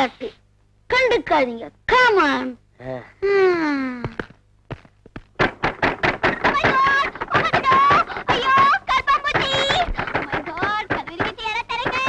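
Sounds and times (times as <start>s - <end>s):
clattering run of knocks: 4.1s - 12.0s
sharp thunks: 4.1s - 12.0s.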